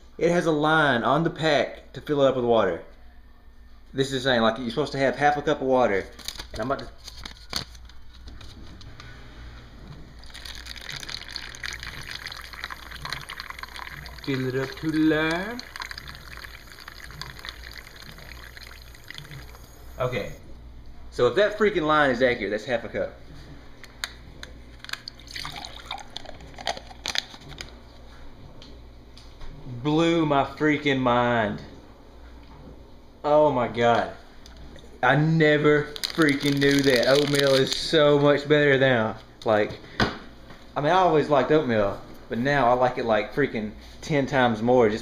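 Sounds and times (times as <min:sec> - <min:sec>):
faucet water running: 0:10.2 - 0:20.4, 0:25.0 - 0:26.9.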